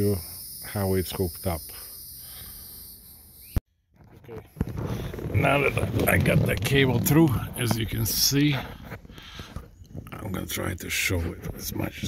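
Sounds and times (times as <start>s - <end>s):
crickets chirping: 0.0s - 3.6s.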